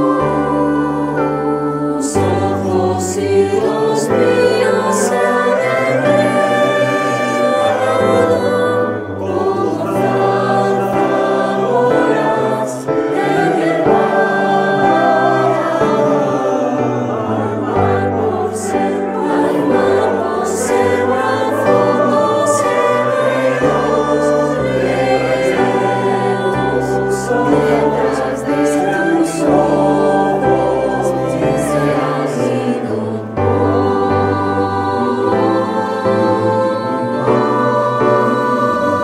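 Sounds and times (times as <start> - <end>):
mixed choir singing in harmony: 0.0 - 39.0.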